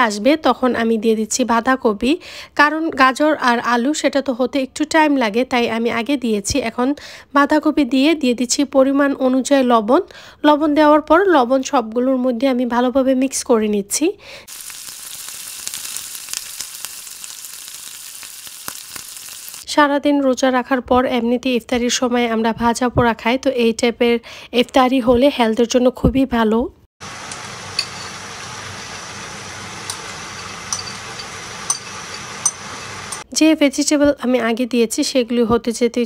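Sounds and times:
vegetables sizzling in a pan: 14.4s - 19.6s, 27.0s - 33.3s
spoon clinking on ceramic bowl: 27.3s - 28.2s, 29.9s - 33.2s.

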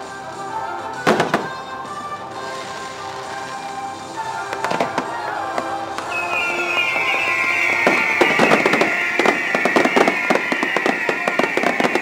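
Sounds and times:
show music: 0.0s - 12.0s
fireworks bangs: 0.1s - 12.0s.

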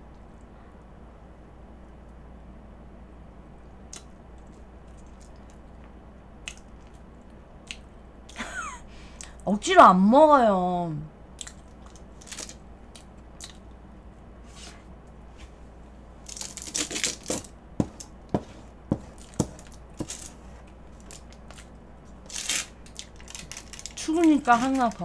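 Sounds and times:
plastic film crinkling: 11.9s - 12.6s, 16.2s - 18.1s, 19.1s - 25.0s.

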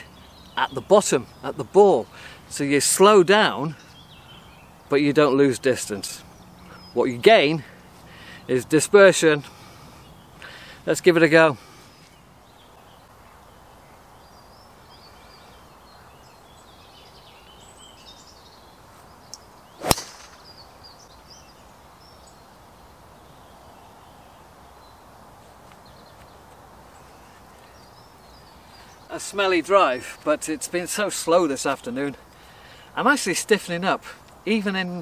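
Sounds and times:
golf club striking ball: 19.8s - 20.6s.

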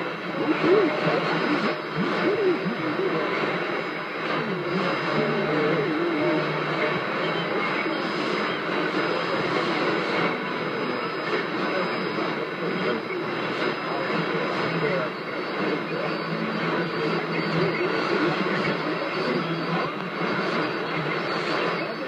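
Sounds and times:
faint voice on radio: 0.0s - 22.0s
radio static hiss: 0.0s - 22.0s.

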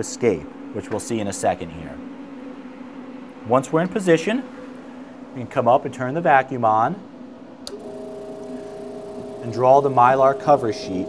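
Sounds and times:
vacuum pump humming: 7.5s - 11.0s
click: 7.6s - 7.8s.

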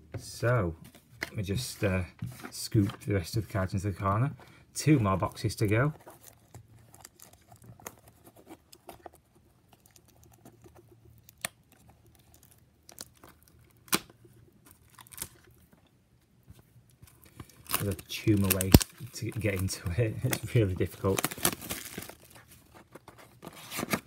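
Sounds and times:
cellophane crinkling and tearing: 5.2s - 15.9s, 16.9s - 24.0s.

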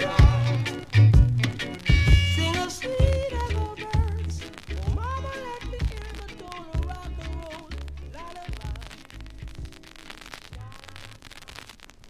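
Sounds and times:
reggae song: 0.0s - 11.8s
vinyl record crackle and hiss: 0.0s - 12.0s.

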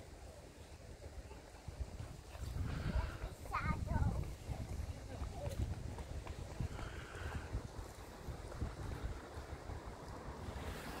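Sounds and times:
faint street sound: 0.0s - 11.0s
wind buffeting microphone: 0.8s - 11.0s.

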